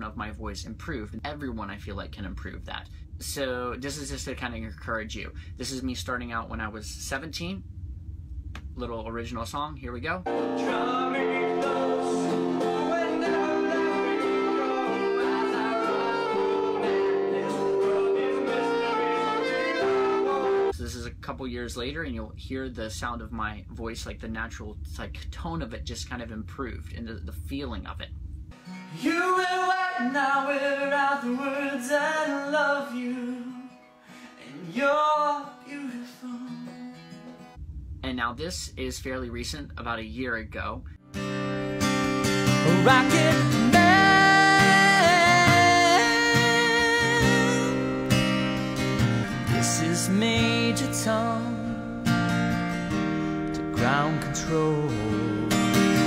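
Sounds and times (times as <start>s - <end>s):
man speaking: 0.0s - 7.6s, 20.7s - 28.1s, 38.0s - 40.8s
person singing: 10.3s - 20.7s, 28.7s - 33.7s, 34.4s - 37.0s, 42.6s - 48.0s, 49.5s - 52.0s, 53.6s - 56.0s
saxophone playing long notes: 10.3s - 20.7s
strummed acoustic guitar: 10.3s - 20.7s, 28.5s - 37.6s, 41.1s - 56.0s.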